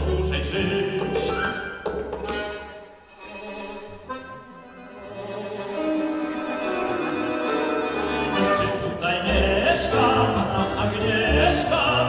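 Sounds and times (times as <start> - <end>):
double bass: 0.0 - 2.6, 6.4 - 12.0
accordion: 0.0 - 12.0
piano: 0.0 - 12.0
violin: 0.0 - 12.0.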